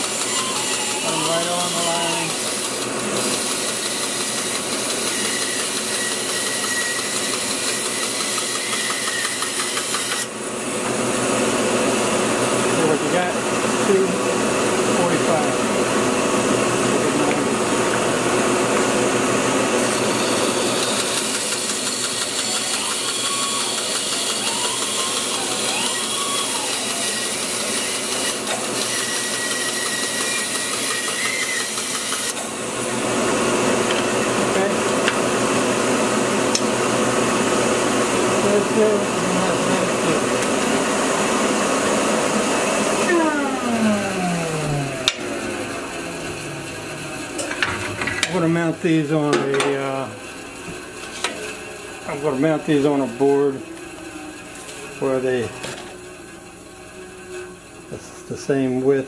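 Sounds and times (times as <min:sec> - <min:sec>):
bandsaw cutting wood: 0:00.0 - 0:10.3, 0:19.5 - 0:35.8, 0:36.5 - 0:50.1.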